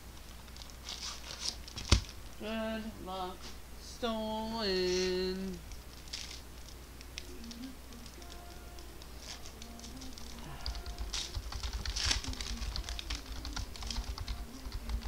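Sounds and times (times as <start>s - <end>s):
card wrappers crinkling: 0.2s - 2.2s, 5.7s - 15.0s.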